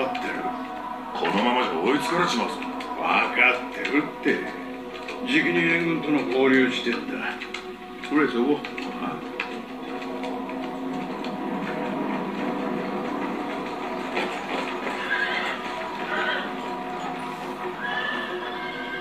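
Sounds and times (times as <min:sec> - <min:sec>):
background music: 0:00.0 - 0:19.0
hooves clopping: 0:00.0 - 0:19.0
horse whinnies: 0:14.9 - 0:16.6, 0:17.6 - 0:19.0.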